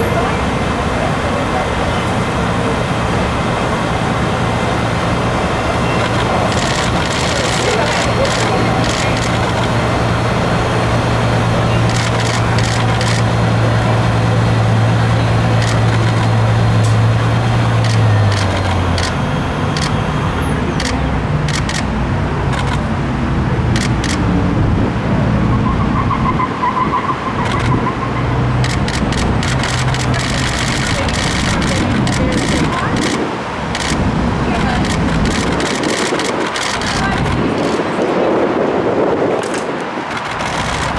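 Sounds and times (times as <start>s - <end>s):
people talking: 0.0s - 21.8s, 28.6s - 40.9s
street noise: 0.0s - 40.9s
vehicle engine idling: 0.1s - 21.9s, 28.5s - 37.5s
sharp clicks: 6.0s - 9.7s, 11.9s - 13.3s, 15.6s - 17.0s, 17.8s - 19.2s, 20.8s - 21.9s, 22.5s - 22.8s, 23.8s - 24.2s, 27.4s - 27.8s, 28.6s - 34.0s, 34.6s - 37.8s, 39.4s - 40.9s.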